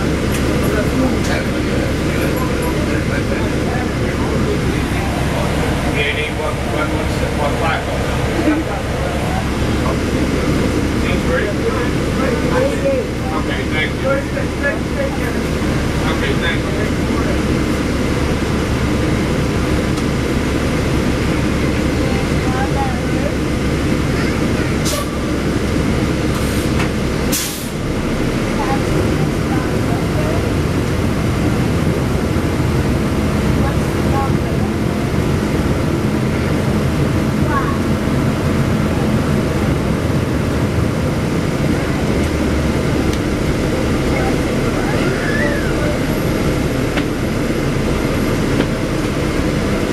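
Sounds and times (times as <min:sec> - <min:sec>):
bus engine drone: 0:00.0 - 0:49.9
air brake hisses: 0:26.4 - 0:27.8.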